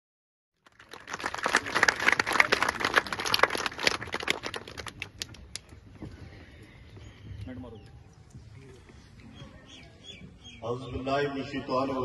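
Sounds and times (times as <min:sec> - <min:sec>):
crowd clapping: 0:00.6 - 0:05.7.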